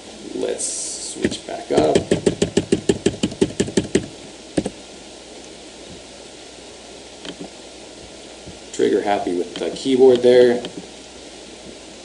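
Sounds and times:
keyboard key tapping: 0:01.8 - 0:04.8.

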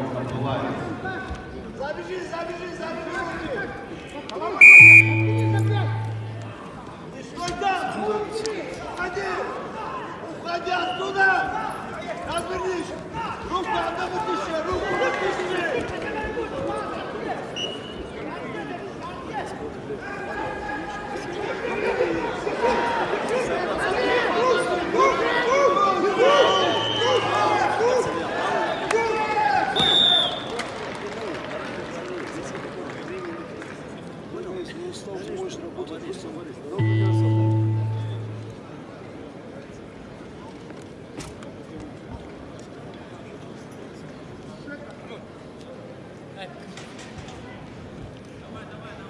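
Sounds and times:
voices in a sports hall: 0:00.0 - 0:49.0
short high tone: 0:04.6 - 0:06.7, 0:36.8 - 0:38.8
crowd hubbub: 0:04.6 - 0:07.2, 0:36.8 - 0:39.5
low steady hum: 0:04.7 - 0:06.7.

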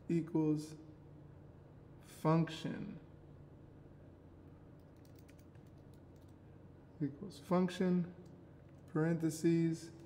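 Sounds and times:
faint keyboard typing: 0:04.7 - 0:06.4.

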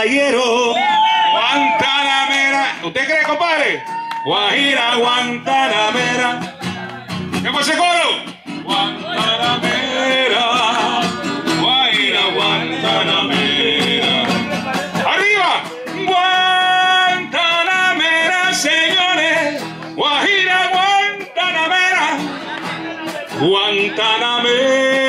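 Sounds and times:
man singing into microphone: 0:00.0 - 0:25.0
classical guitar strumming: 0:04.5 - 0:25.0.

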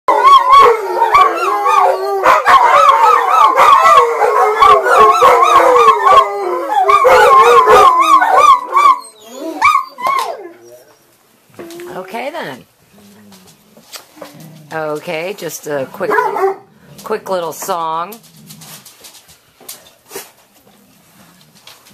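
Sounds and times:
dogs barking sharply: 0:00.1 - 0:09.0, 0:16.0 - 0:16.7
dog yelps: 0:00.1 - 0:10.8
dogs howling in chorus: 0:00.1 - 0:11.0.

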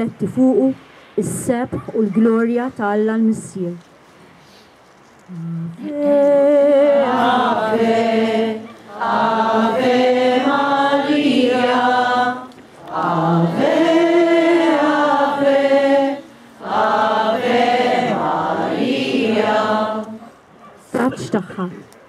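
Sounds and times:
group singing a hymn: 0:05.8 - 0:20.5.

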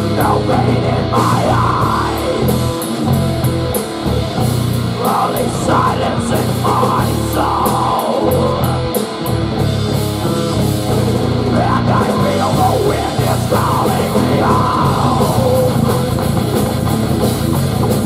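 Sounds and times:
bass guitar riff: 0:00.0 - 0:18.0
distorted electric guitar: 0:00.0 - 0:18.0
drum kit with cymbals: 0:00.0 - 0:18.0.

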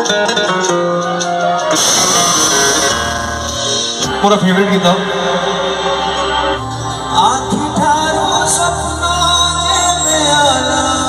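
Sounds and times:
live band music with guitar: 0:00.0 - 0:11.0
gas jet hissing: 0:01.7 - 0:03.8.

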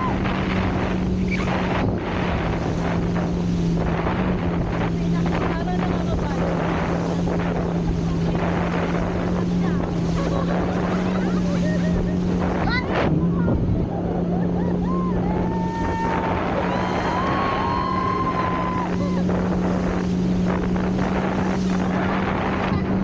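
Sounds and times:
motorboat engine running: 0:00.0 - 0:23.0
rushing water: 0:00.0 - 0:23.0
wind on microphone: 0:00.0 - 0:23.0
people shrieking and laughing: 0:13.9 - 0:19.3.

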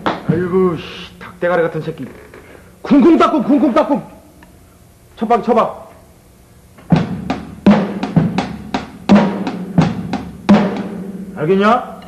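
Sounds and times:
drum kit playing a beat: 0:00.0 - 0:00.9, 0:06.8 - 0:12.0.

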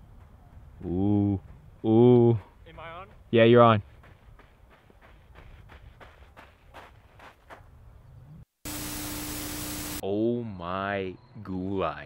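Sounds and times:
faint wind: 0:00.0 - 0:12.0
running footsteps on gravel: 0:02.4 - 0:07.8
loud steady hiss: 0:08.7 - 0:10.0
low hum: 0:08.7 - 0:10.0.

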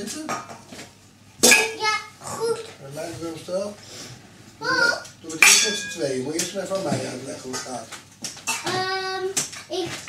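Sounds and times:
young child's voice: 0:01.6 - 0:02.8, 0:04.6 - 0:05.2, 0:08.5 - 0:10.0.

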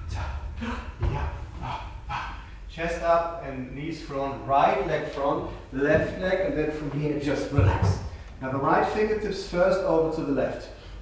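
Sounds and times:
man's wordless vocal sounds: 0:00.0 - 0:09.1.

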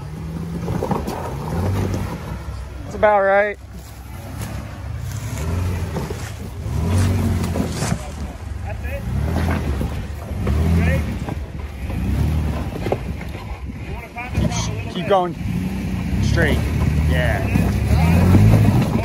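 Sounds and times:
engine revving: 0:00.0 - 0:19.0.

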